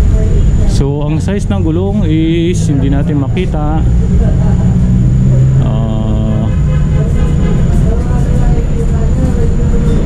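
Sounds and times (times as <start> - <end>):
loud low rumble: 0.0 - 10.0.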